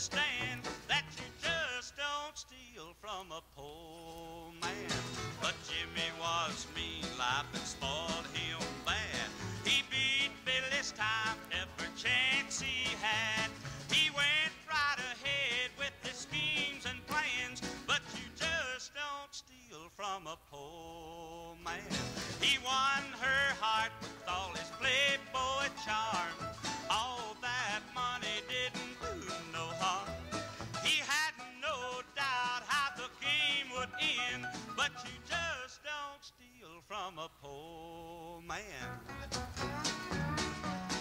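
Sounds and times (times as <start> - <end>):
live band playing country song: 0.0 - 1.9, 4.6 - 18.8, 21.7 - 35.7, 38.5 - 41.0.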